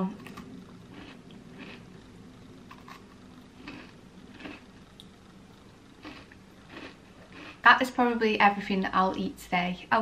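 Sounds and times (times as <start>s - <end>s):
low room hum: 0.0s - 10.0s
chewing crunchy biscuit: 0.1s - 7.7s.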